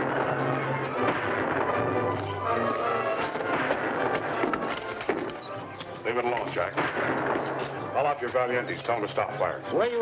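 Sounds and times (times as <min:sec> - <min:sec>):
gunshots: 0:00.0 - 0:05.5, 0:06.6 - 0:08.1.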